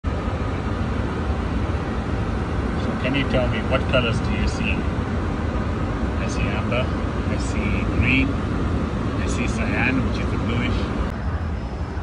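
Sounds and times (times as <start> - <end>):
cockpit hum and rush: 0.0 - 12.0.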